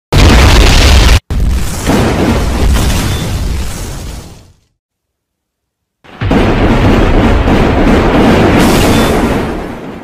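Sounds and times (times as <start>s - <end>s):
loud booming explosion effect: 0.1s - 4.4s, 6.1s - 10.0s.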